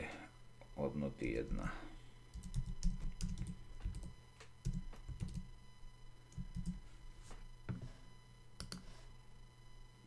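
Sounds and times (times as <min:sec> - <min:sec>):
computer keyboard typing: 0:02.3 - 0:05.5, 0:06.3 - 0:06.8, 0:08.6 - 0:08.8.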